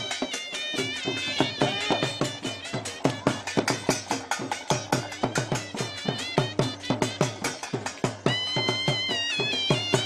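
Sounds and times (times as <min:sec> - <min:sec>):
drum beating: 0:00.0 - 0:10.0
nasal reed pipe: 0:00.0 - 0:10.0.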